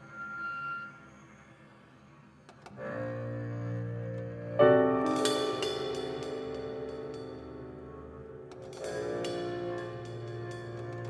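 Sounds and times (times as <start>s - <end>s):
jazz quartet playing: 2.8s - 11.0s
low sustained note: 2.8s - 11.0s.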